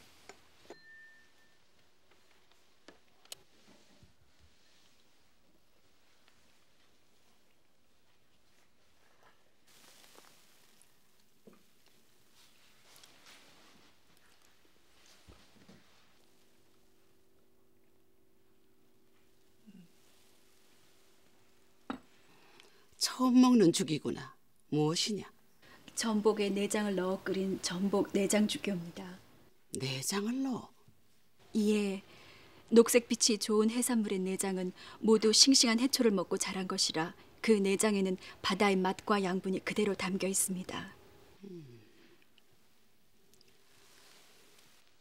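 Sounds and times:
faint steady hum: 0:00.0 - 0:45.0.

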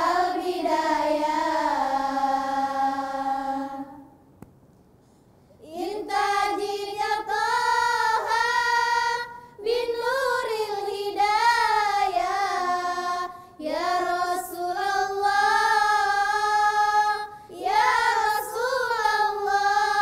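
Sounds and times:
girls singing in unison: 0:00.0 - 0:04.2, 0:05.6 - 0:20.0.

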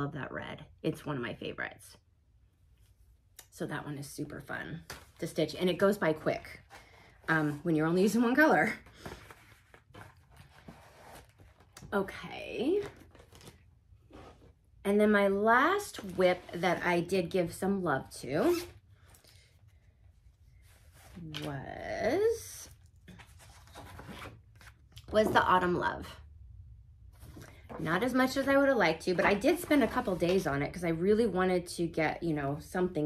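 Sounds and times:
paper rustling: 0:08.8 - 0:11.8.

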